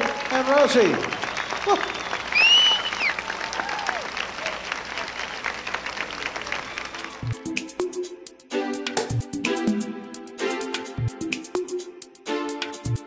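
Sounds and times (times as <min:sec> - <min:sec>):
high shouts: 0:00.0 - 0:05.2
audience applauding and cheering: 0:00.0 - 0:08.2
electronic music with steady beat: 0:07.0 - 0:13.0.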